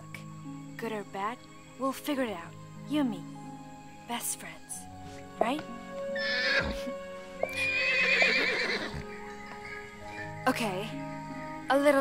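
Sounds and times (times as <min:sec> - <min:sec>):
soft background music: 0:00.0 - 0:12.0
horse whinnying: 0:06.2 - 0:09.8.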